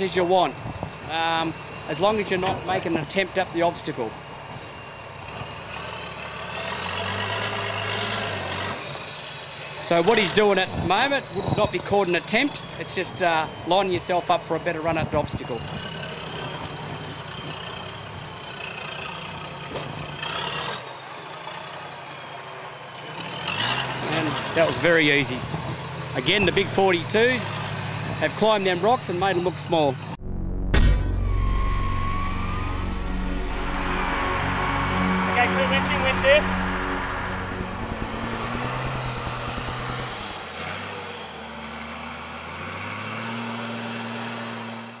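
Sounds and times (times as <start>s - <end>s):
car engine running low: 0.0s - 45.0s.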